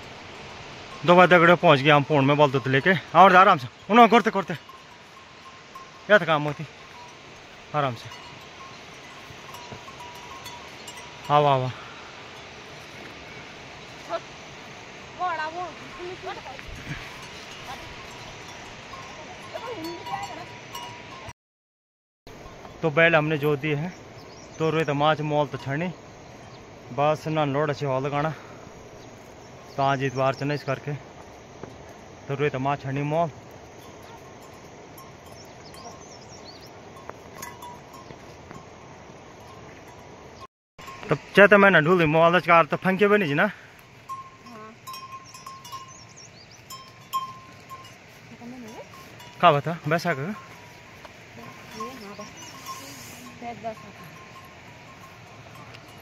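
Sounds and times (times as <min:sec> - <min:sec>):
animal neck bells ringing: 0:00.0 - 0:21.3, 0:22.3 - 0:56.0.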